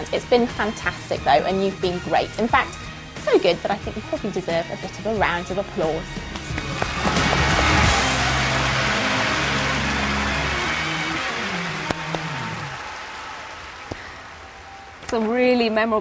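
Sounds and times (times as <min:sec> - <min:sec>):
music playing: 0:00.0 - 0:16.0
applause: 0:06.1 - 0:14.6.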